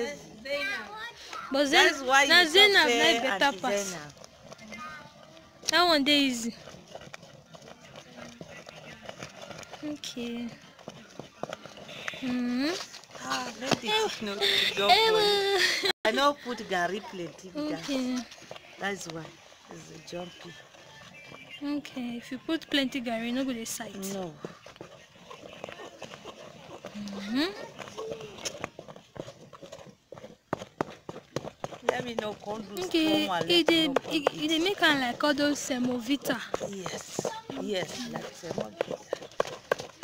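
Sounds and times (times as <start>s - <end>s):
stick knocking in thick paste: 31.6s - 39.9s.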